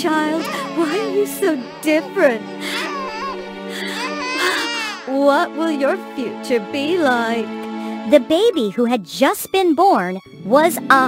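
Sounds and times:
soft background music: 0.0 - 11.0
newborn baby crying: 0.2 - 5.2.

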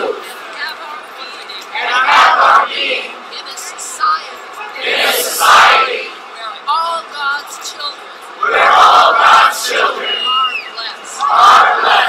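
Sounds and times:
crowd shouting together: 1.7 - 3.2, 4.7 - 6.2, 8.4 - 10.4, 11.0 - 12.0.

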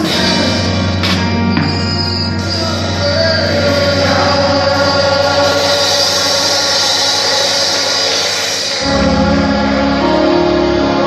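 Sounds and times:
choir singing held chord: 2.4 - 11.0.

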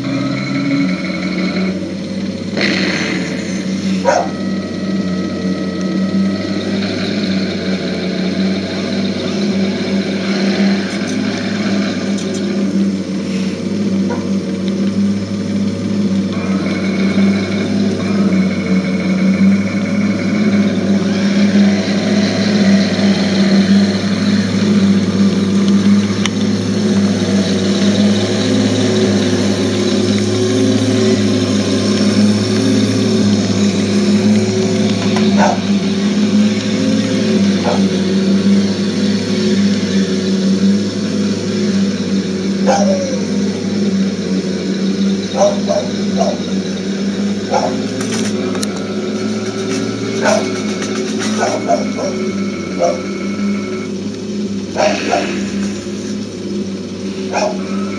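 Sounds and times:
simulated tank engine rumble: 0.0 - 57.9.

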